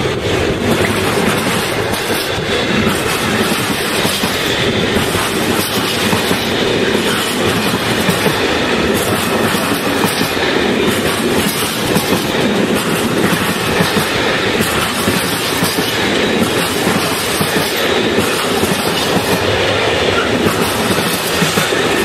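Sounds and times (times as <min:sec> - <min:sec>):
steel train wheels rolling on rails: 0:00.0 - 0:22.0.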